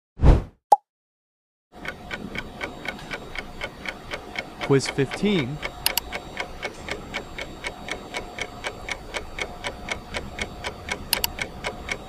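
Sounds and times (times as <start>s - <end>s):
clock ticking: 1.8s - 12.0s.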